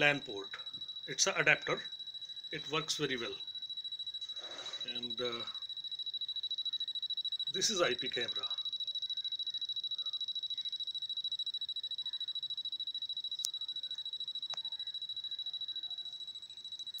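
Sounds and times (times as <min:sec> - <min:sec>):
pulsing high-pitched electronic whine: 0:00.0 - 0:17.0.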